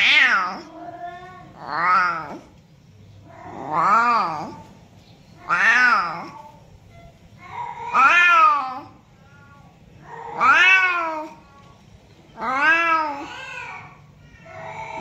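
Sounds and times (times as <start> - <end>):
cat meowing loudly: 0.0 - 2.5, 3.3 - 4.7, 5.4 - 6.6, 7.4 - 11.7, 12.4 - 15.0.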